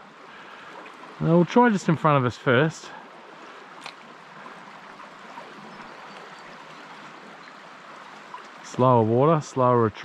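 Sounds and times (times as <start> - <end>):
creek water flowing: 0.0 - 10.0.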